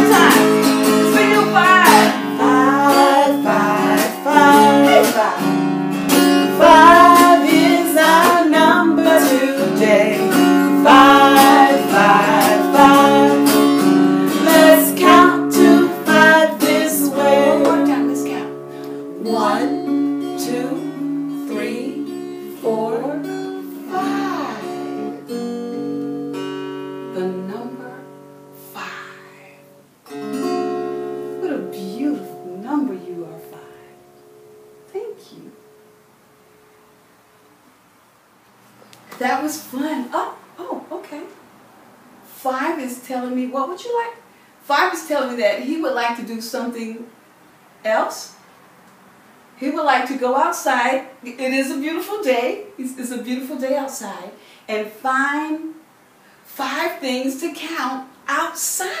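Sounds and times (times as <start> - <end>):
woman singing: 0.0 - 5.6, 6.5 - 18.6, 19.2 - 25.2
acoustic guitar strumming: 0.0 - 37.6.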